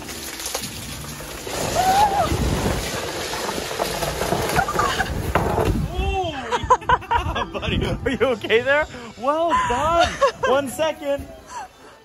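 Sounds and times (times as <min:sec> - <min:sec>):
clothing scraping on ice: 0:00.1 - 0:05.8.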